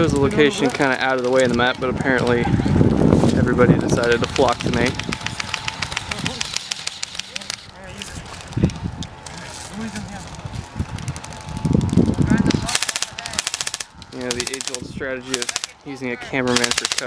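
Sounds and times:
players' voices: 0.0s - 17.0s
airsoft guns firing bursts: 4.0s - 7.7s, 12.5s - 15.8s, 16.4s - 17.0s.

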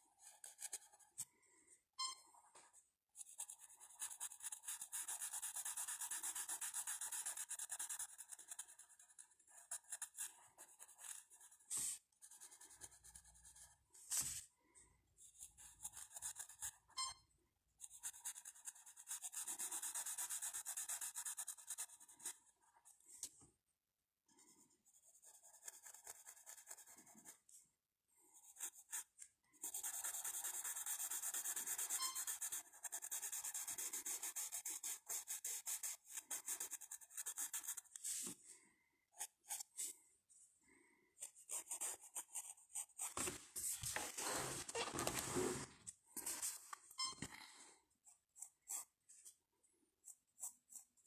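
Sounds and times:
pencil scratching on paper: 0.0s - 1.3s, 3.2s - 14.4s, 15.2s - 17.0s, 17.8s - 23.0s, 24.4s - 27.5s, 28.4s - 38.4s, 39.2s - 40.0s, 41.2s - 46.6s, 48.0s - 49.4s, 50.0s - 51.0s.

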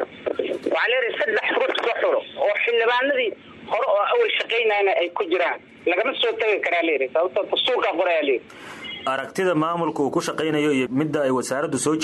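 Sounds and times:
person talking over phone: 0.0s - 9.4s.

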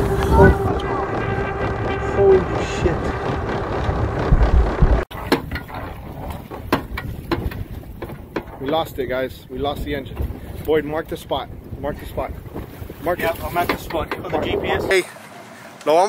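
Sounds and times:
steady high tone: 0.0s - 4.8s
wind and water rushing: 0.0s - 16.0s
knocks and clicks: 0.2s - 8.9s.

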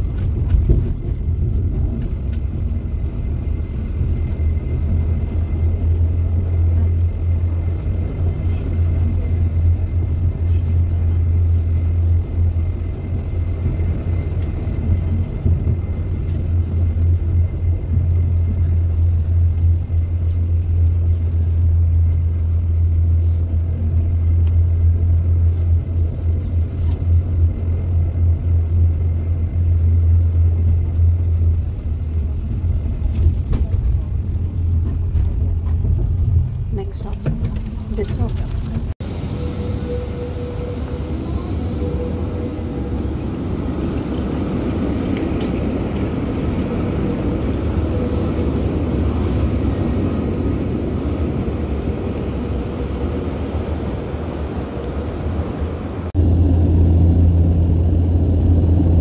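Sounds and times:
tram rumbling on rails: 0.0s - 59.0s.

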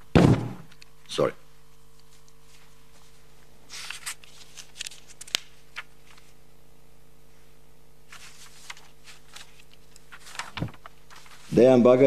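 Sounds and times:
low electrical hum: 0.0s - 12.0s
paper rustling and crackling: 3.7s - 6.4s, 8.1s - 11.7s.

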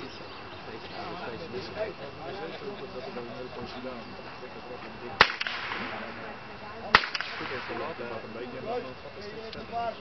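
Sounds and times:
blank pistol shots with echo: 5.2s - 6.2s, 6.9s - 8.0s.

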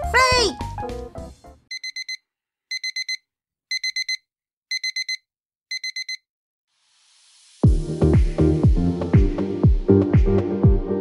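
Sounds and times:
digital alarm clock beeping: 1.7s - 6.2s.

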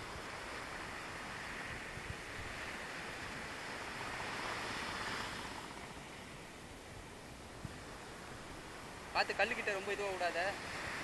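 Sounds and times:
surf breaking on a sandy beach: 0.0s - 11.0s.

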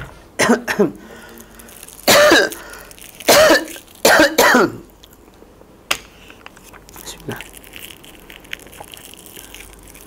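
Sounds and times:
person biting and chewing: 1.2s - 5.4s, 6.5s - 10.0s.

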